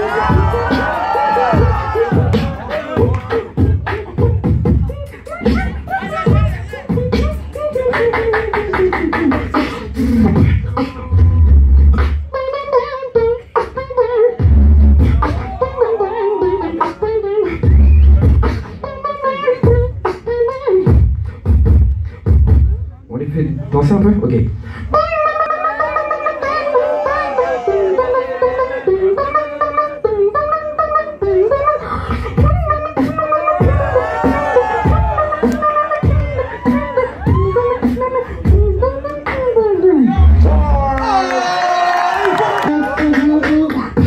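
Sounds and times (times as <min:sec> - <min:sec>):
person beatboxing: 0:00.0 - 0:44.0.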